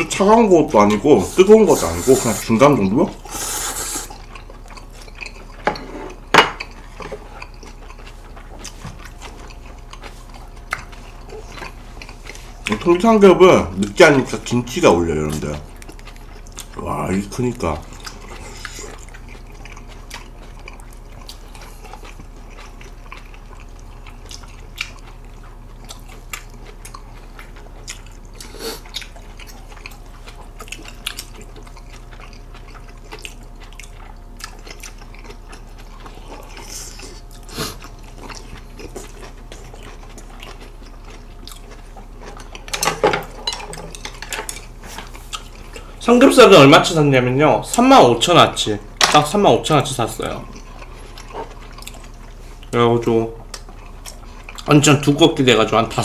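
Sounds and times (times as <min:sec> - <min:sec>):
steady low hum: 0:00.0 - 0:56.0
wet chewing sounds: 0:00.0 - 0:56.0.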